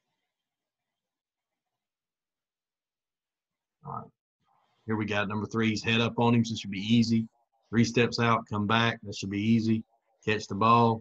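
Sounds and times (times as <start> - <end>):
man speaking: 4.8 - 11.0.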